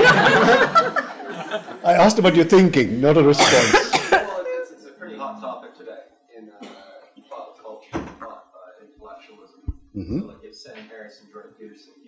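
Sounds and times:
thump: 0:07.9 - 0:08.2.

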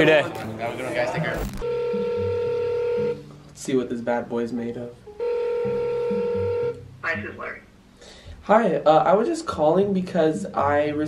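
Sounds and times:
telephone ringback tone: 0:01.6 - 0:03.3, 0:05.1 - 0:07.3.

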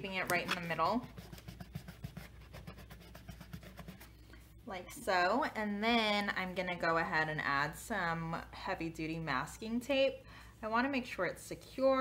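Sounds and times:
fingertips rubbing tape on plastic: 0:00.2 - 0:04.2.

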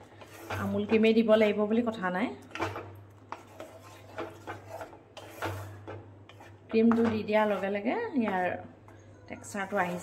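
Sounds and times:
spatula scraping a pan: 0:00.0 - 0:01.6, 0:02.4 - 0:08.7, 0:09.4 - 0:10.0
spatula stirring thick gravy: 0:00.0 - 0:01.6, 0:02.4 - 0:10.0.

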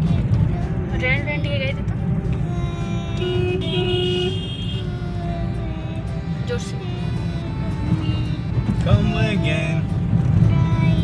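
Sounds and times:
car driving rumble from inside: 0:00.0 - 0:11.0
vehicle horn: 0:03.2 - 0:04.9.

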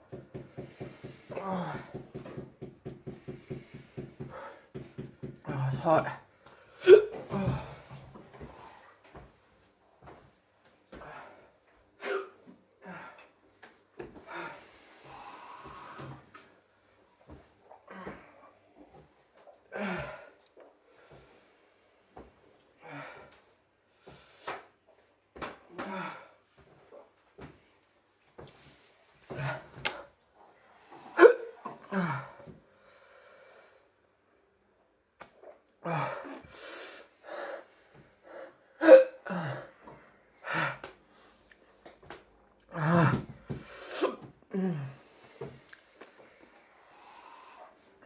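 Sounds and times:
man puffing and wheezing: 0:00.1 - 0:09.2, 0:28.4 - 0:32.6, 0:35.3 - 0:48.0
man gasping and groaning: 0:00.5 - 0:02.4, 0:05.4 - 0:08.6, 0:19.7 - 0:20.4, 0:31.1 - 0:32.6, 0:35.8 - 0:37.5, 0:38.8 - 0:41.0, 0:42.6 - 0:45.6.

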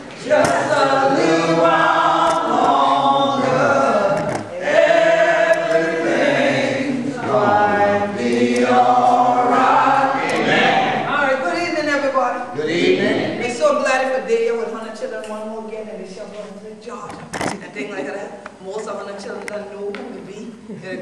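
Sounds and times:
group singing unaccompanied: 0:00.0 - 0:17.4.

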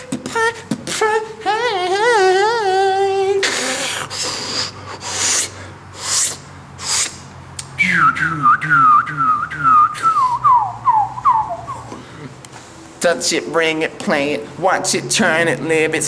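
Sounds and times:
breathy mouth bursts: 0:03.4 - 0:07.3
whistled notes sliding down: 0:07.8 - 0:11.9.

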